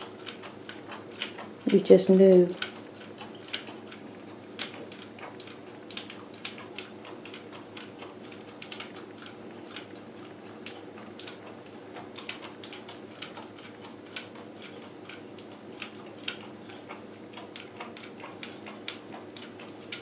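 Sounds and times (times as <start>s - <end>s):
dog licking: 0.0s - 20.0s
steady low hum: 0.0s - 20.0s.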